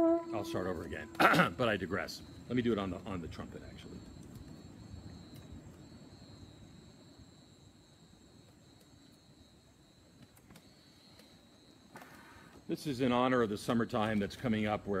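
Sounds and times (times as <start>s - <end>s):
high chirring of insects: 0.0s - 13.7s.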